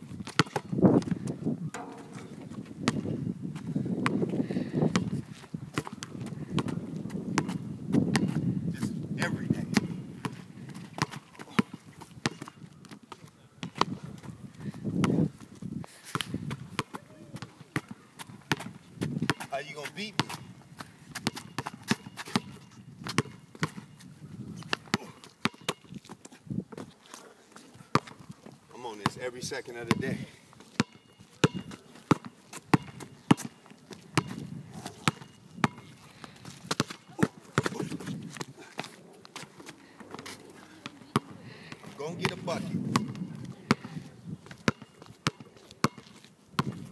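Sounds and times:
basketball bouncing on asphalt: 0:00.0 - 0:08.6, 0:09.2 - 0:27.0, 0:27.9 - 0:46.9.

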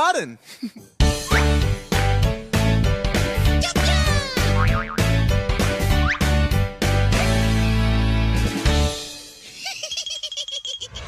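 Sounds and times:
bouncy children's music: 0:00.9 - 0:10.9.

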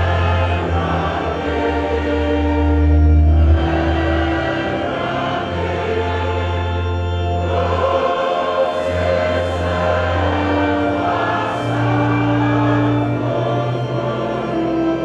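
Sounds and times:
choir singing a hymn: 0:00.0 - 0:15.0.

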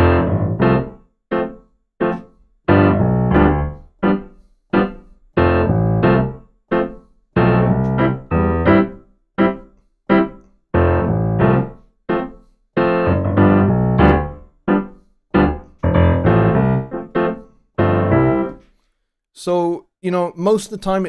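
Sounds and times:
piano keyboard chords: 0:00.0 - 0:18.6.

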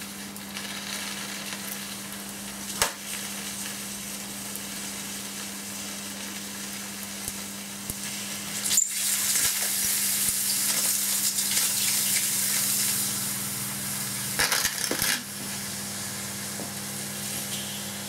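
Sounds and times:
batteries sizzling and hissing: 0:00.0 - 0:18.0
sharp crack: 0:02.7 - 0:03.2.

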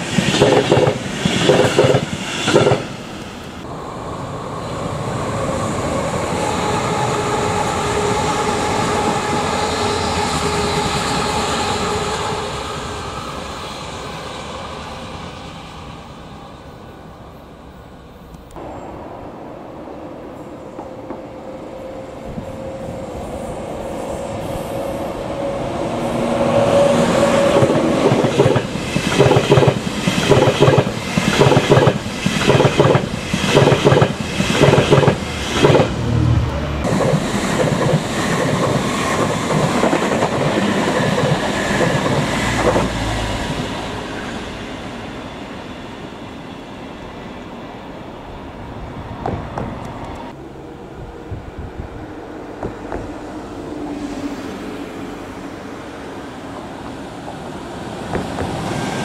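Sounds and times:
train passing hum: 0:00.0 - 0:59.0.

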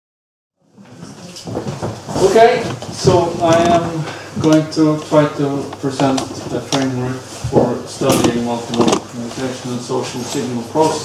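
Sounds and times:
room noise: 0:00.6 - 0:11.0
knocks and rustles: 0:00.9 - 0:04.6, 0:06.0 - 0:09.5.

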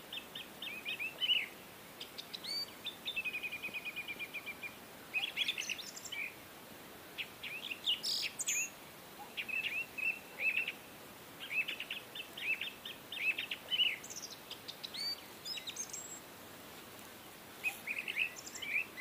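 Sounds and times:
small birds chirping: 0:00.0 - 0:06.5, 0:07.1 - 0:19.0
faint steady hiss: 0:00.0 - 0:19.0.

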